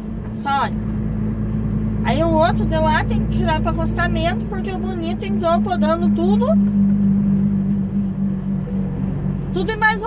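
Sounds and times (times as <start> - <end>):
diesel truck engine drone: 0.0 - 10.0
road noise: 0.0 - 10.0.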